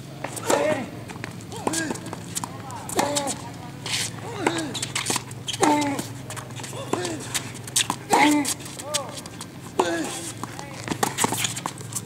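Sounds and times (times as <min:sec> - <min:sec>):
tennis ball bouncing: 0:00.2 - 0:12.0
tennis racquet hitting ball: 0:00.2 - 0:12.0.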